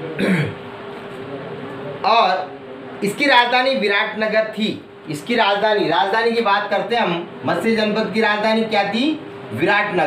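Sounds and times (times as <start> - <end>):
faint steady hum: 0.0 - 10.0
man clearing throat: 0.1 - 0.6.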